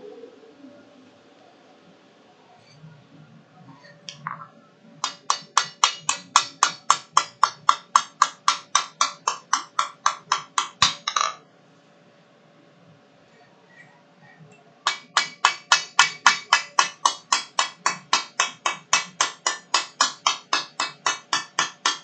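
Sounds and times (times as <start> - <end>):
hammer striking steel on anvil: 5.0 - 11.4, 14.9 - 22.0.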